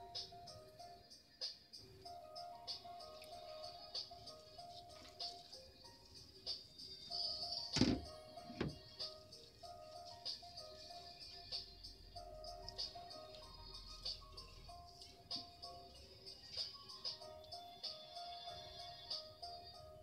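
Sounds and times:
background music with held notes: 0.0 - 20.0.

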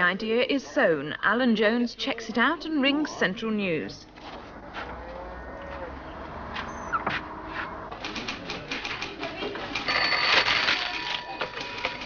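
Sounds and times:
typewriters clattering: 7.9 - 12.0
telephone ringing: 9.8 - 12.0.

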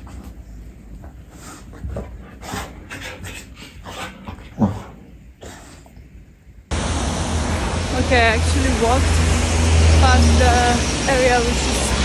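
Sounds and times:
dog grunt: 1.8 - 5.9
street traffic noise: 6.7 - 12.0.

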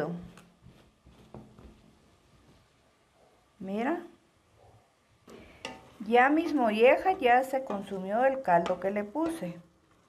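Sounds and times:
wooden spoon stirring in metal pot: 0.0 - 2.9, 4.9 - 10.0.

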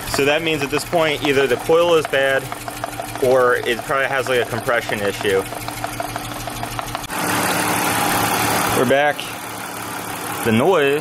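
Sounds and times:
car engine idling with misfire: 0.0 - 11.0.

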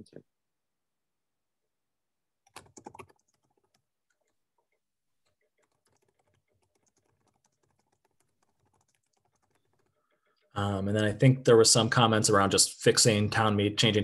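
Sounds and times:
typing on keyboard: 2.5 - 10.5.

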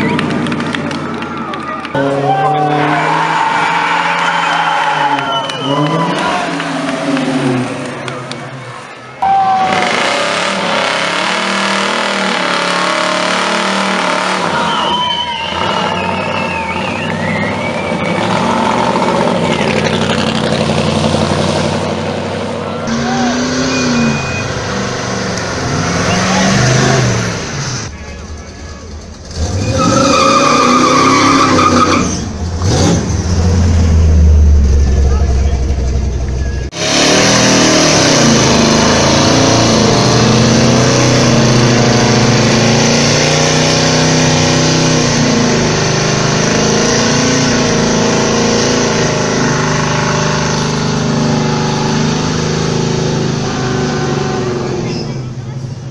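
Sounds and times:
crowd voices: 0.0 - 10.6, 22.1 - 30.4, 34.4 - 36.8, 53.3 - 55.9
car engines revving: 0.0 - 55.9
deep engine rumble: 15.0 - 55.9.

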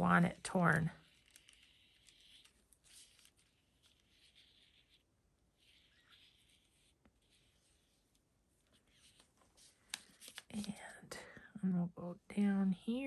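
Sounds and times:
brush pen scratching on paper: 0.0 - 9.8.

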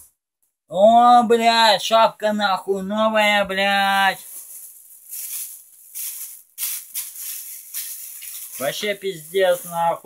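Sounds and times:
plastic bag crinkling: 3.9 - 10.0.

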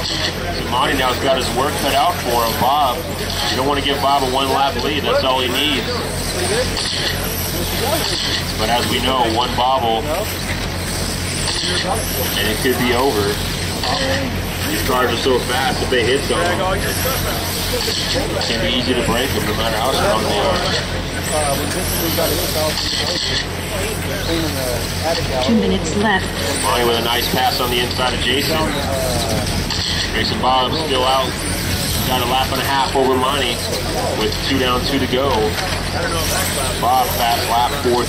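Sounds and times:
people talking: 0.0 - 10.7, 11.3 - 38.0
electric motors whining: 0.0 - 38.0.

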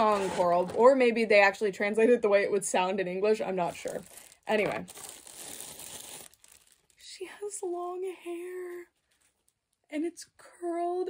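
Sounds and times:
plastic packaging crinkling: 3.4 - 9.8.

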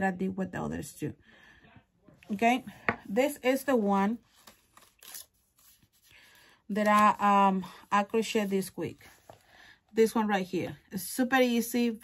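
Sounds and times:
book pages rustling: 3.5 - 9.6.

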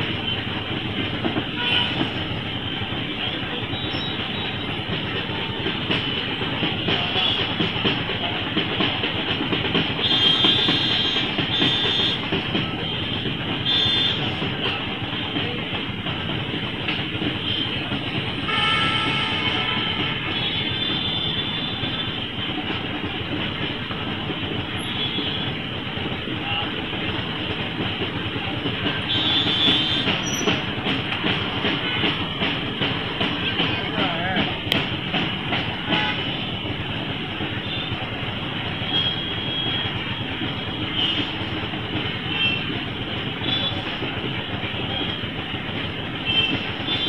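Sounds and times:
road noise: 0.0 - 47.0.

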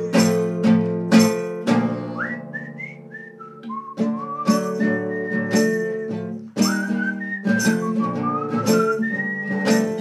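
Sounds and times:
classical guitar strumming: 0.0 - 10.0
whistled melody: 1.9 - 10.0.

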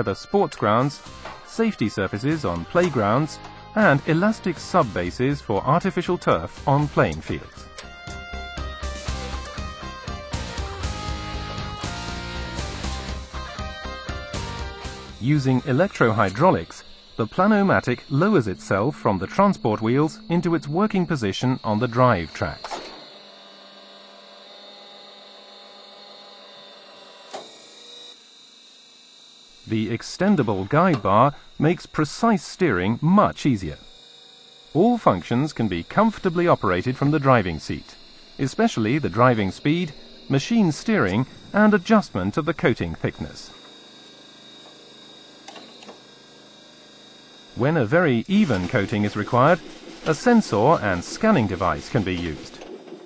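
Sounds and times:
hydraulic unit humming: 0.0 - 53.0
machine clunk: 22.6 - 23.1.

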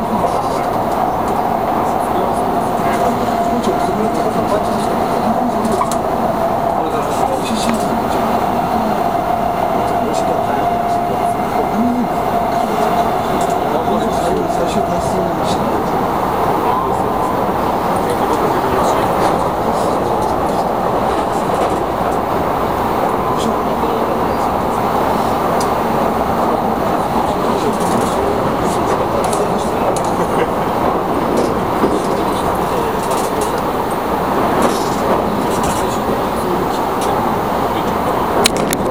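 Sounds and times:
train wheels rumbling on rails: 0.0 - 38.9.

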